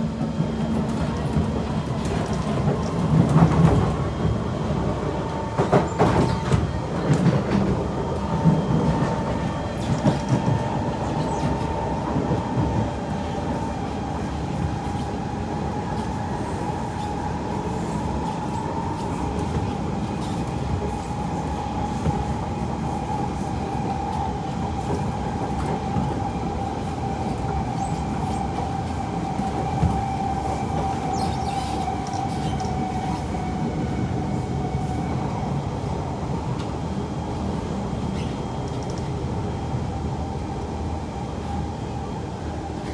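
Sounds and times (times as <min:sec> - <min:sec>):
steady train whine: 0:00.0 - 0:42.9
train wheels rumbling on rail: 0:00.0 - 0:42.9.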